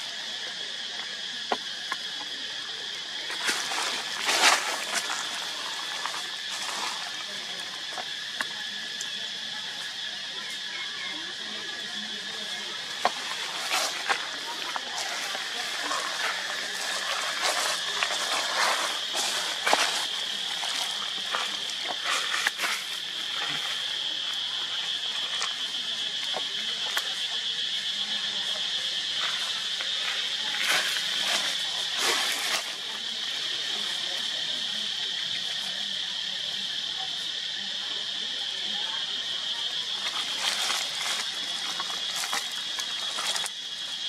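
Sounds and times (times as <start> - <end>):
high-pitched insect drone: 0.0 - 44.0
crackles and rustles: 3.0 - 9.2, 12.2 - 27.8, 28.5 - 34.2, 39.8 - 44.0.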